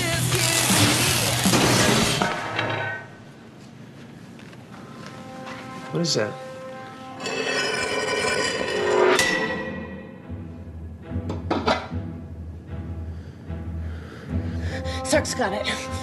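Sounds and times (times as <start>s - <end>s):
orchestral music: 5.1s - 16.0s.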